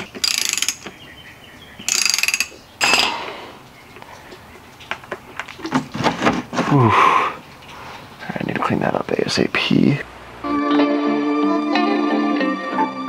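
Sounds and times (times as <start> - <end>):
socket ratchet clicking: 0.0 - 1.0, 1.8 - 3.1.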